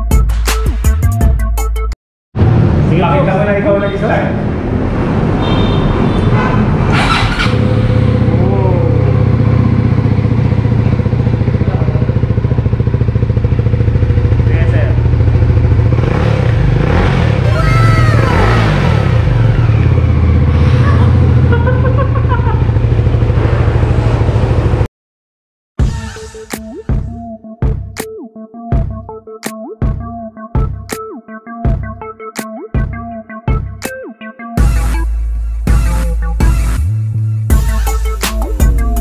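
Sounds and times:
motorcycle engine idling: 7.1 - 16.2, 19.2 - 24.9.

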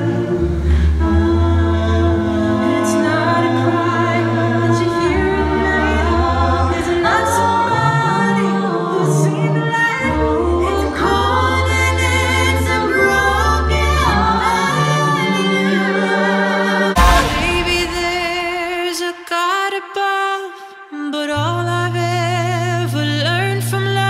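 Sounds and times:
a cappella group singing: 0.0 - 24.0.

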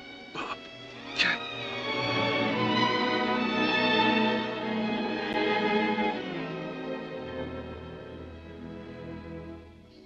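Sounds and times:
orchestral strings: 0.0 - 10.0.

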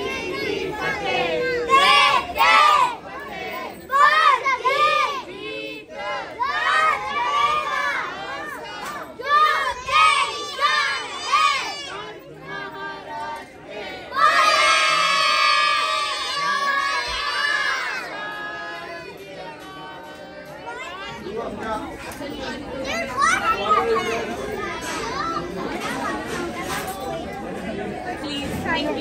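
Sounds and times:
children shouting in unison: 0.0 - 3.1, 6.0 - 12.1, 14.1 - 18.2
children chanting: 0.0 - 27.2.

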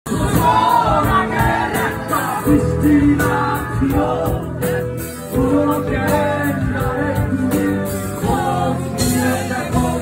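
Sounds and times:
drums steady beat: 0.0 - 10.0
live band music: 0.0 - 10.0
man singing into microphone: 0.1 - 10.0.

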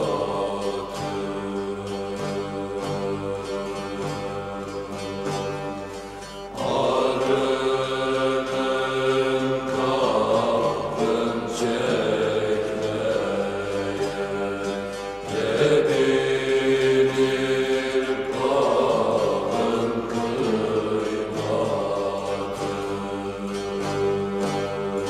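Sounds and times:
voices singing long phrases: 0.0 - 5.9, 6.5 - 25.0
plucked lute ensemble: 0.0 - 25.0.

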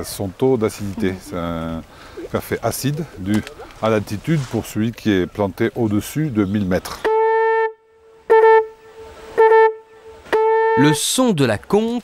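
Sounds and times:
conch shell horn blasts: 7.0 - 11.0.

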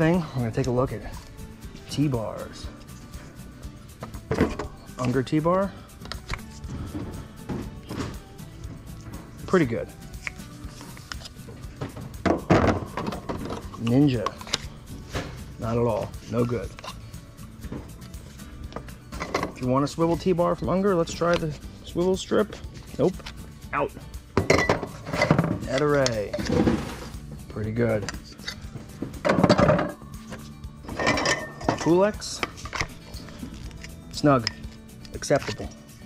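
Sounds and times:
plastic clatter and rub: 24.8 - 27.1.

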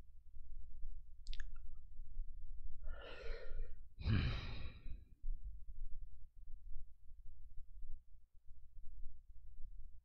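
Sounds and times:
man sighing: 4.0 - 5.0.

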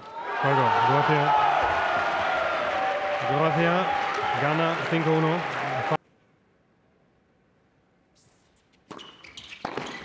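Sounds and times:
tennis shoes squeaking on court: 8.2 - 10.0
tennis ball hit with racket: 8.9 - 10.0.

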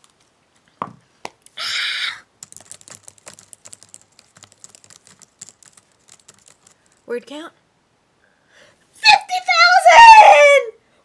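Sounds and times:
typing on computer keyboard: 2.4 - 7.0.

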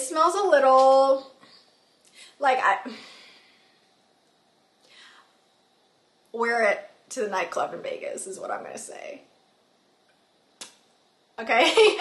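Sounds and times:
faint breath: 1.4 - 3.9, 4.8 - 5.4.

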